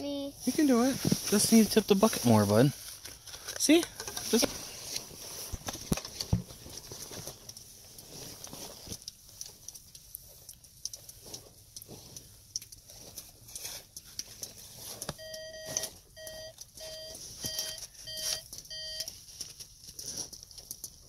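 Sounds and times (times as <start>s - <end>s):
snow crunching and scraping: 0.4s - 3.0s
electronic beeps: 15.2s - 19.1s.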